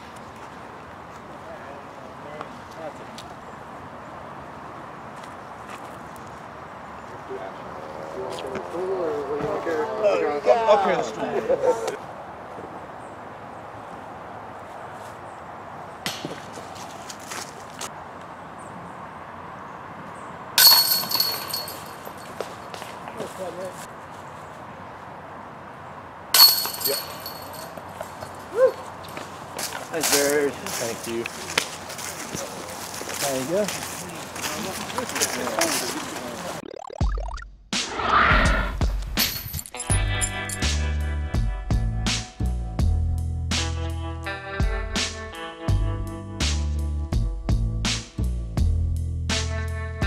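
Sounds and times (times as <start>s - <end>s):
discs hitting metal basket chains: 20.6s - 22.4s, 26.4s - 28.5s, 39.2s - 40.7s.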